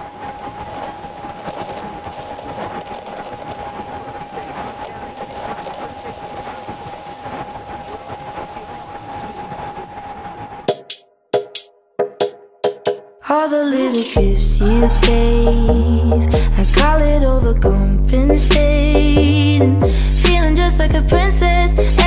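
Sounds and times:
steady rumbling noise: 0.0 - 10.7, 14.2 - 22.0
steady tone: 14.2 - 22.0.

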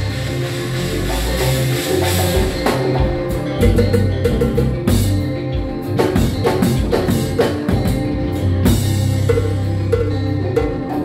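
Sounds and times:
cymbal wash: 0.0 - 3.9
drum kit strikes: 0.0 - 11.0
keyboards: 0.0 - 11.0
low bass notes: 0.0 - 11.0.

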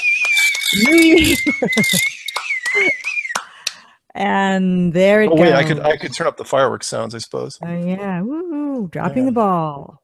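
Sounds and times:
steady high tone: 0.0 - 3.1, 5.0 - 7.0
person cheering or laughing: 0.8 - 2.1, 2.7 - 3.0
person clapping hands: 1.8 - 3.8.

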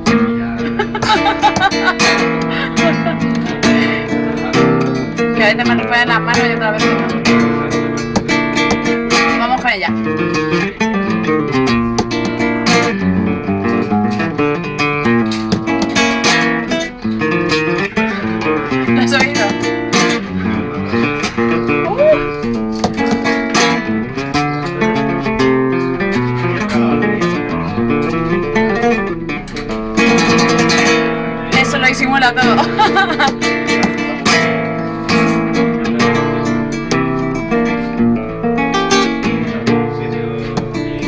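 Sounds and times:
flamenco guitar: 0.0 - 41.0.

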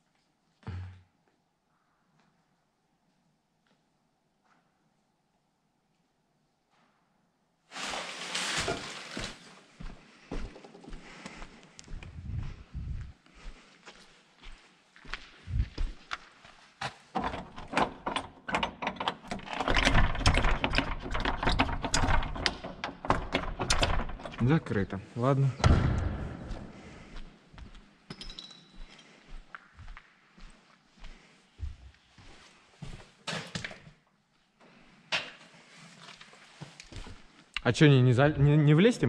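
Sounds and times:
footsteps: 7.7 - 17.1, 25.6 - 33.2
handling knocks and clicks: 16.8 - 24.5
locked door rattling thuds: 17.2 - 24.7.

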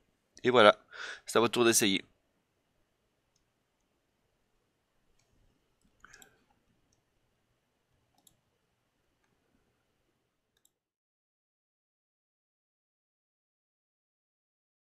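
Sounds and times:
faint computer mouse clicks: 5.2 - 7.1, 8.1 - 8.4, 10.6 - 10.8.

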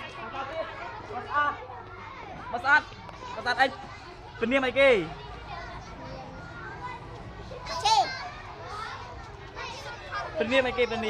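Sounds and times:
children's voices: 0.6 - 4.4, 5.0 - 11.0.

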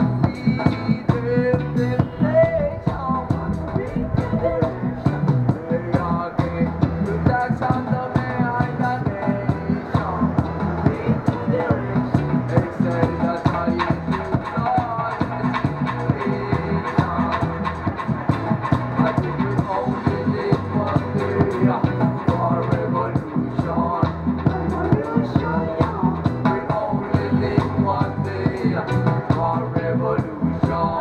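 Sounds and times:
keyboard: 0.0 - 31.0
low bass line: 0.0 - 31.0.

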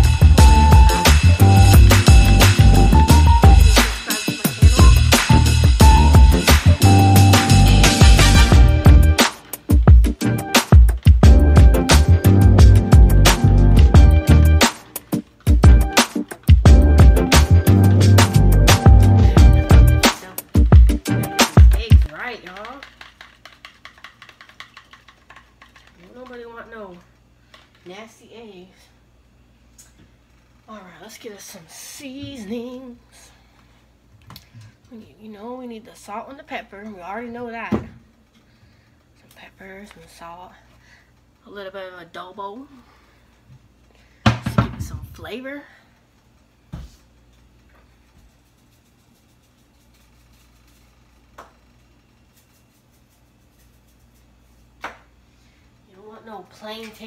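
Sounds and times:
fork beating eggs in plastic bowl: 21.4 - 27.9, 48.0 - 51.0
knock at kitchen counter: 44.2 - 45.1.

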